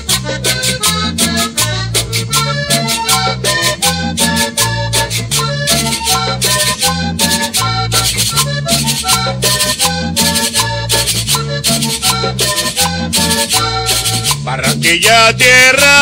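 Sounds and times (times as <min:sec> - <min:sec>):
accordion melody: 0:00.0 - 0:16.0
rattling percussion beat: 0:00.0 - 0:16.0
repeating bass line: 0:00.0 - 0:16.0.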